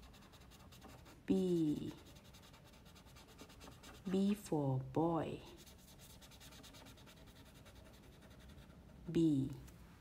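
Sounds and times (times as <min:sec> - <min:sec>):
marker scratching on paper: 0:00.0 - 0:04.4, 0:05.4 - 0:09.3.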